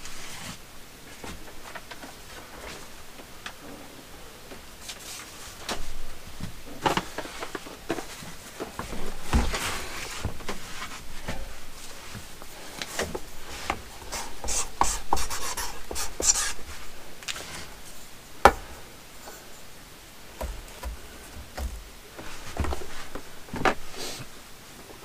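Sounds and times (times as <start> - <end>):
rustling of bins boxes and bags: 0.0 - 25.0.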